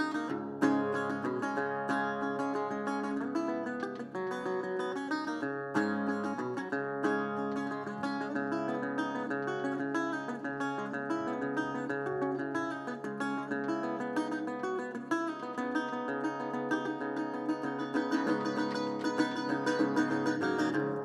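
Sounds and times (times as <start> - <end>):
resonator guitar fingerstyle: 0.0 - 21.0.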